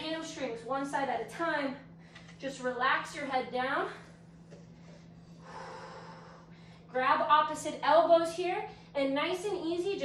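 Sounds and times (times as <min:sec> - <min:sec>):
faint steady hum: 0:00.0 - 0:10.0
woman breathing out: 0:05.2 - 0:06.9.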